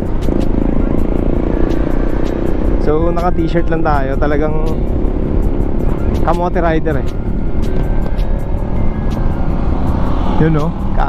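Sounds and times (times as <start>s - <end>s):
scooter engine accelerating: 0.0s - 11.0s
wind rumble on microphone: 0.0s - 11.0s.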